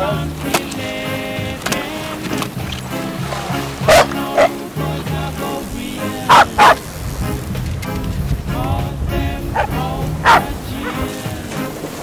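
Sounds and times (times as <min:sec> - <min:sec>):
background music: 0:00.0 - 0:12.0
small dog barking: 0:03.9 - 0:04.6, 0:06.3 - 0:06.8, 0:09.6 - 0:11.0.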